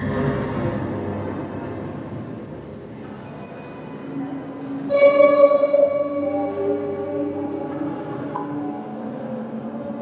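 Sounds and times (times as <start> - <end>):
sustained electronic chord: 4.9 - 9.8
rumbling noisy drone: 4.9 - 10.0.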